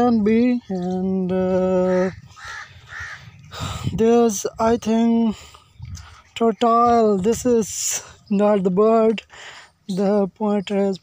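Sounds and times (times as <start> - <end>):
harsh bird calls: 0.0 - 11.0.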